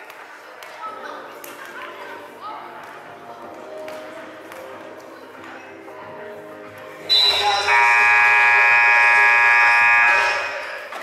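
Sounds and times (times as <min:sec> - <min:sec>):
scoreboard buzzer blaring: 0:07.1 - 0:10.6.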